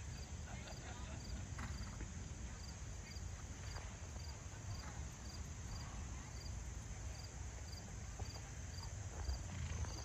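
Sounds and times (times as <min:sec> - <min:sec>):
insect chirping: 0:00.0 - 0:10.0
horse hoofbeats on sand: 0:08.1 - 0:10.0.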